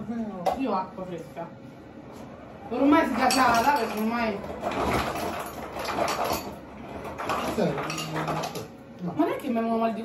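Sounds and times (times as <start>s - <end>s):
dishes and cutlery clinking: 3.2s - 8.7s.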